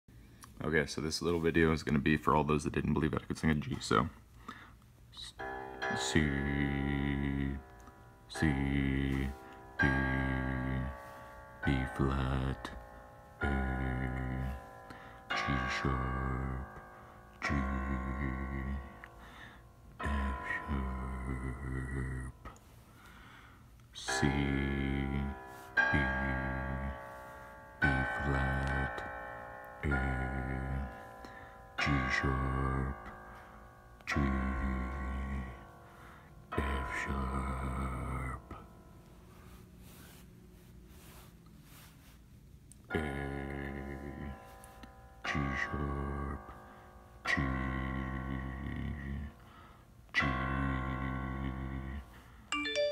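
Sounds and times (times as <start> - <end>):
man singing low notes: 5.1 - 12.8, 13.4 - 19.2, 19.9 - 22.7, 23.9 - 27.2, 29.8 - 31.1, 31.8 - 33.2, 34.0 - 35.7, 36.5 - 38.7, 42.8 - 44.5, 45.2 - 46.6, 47.2 - 49.4, 50.1 - 52.8
piano app note: 5.2 - 18.2, 52.5 - 52.9.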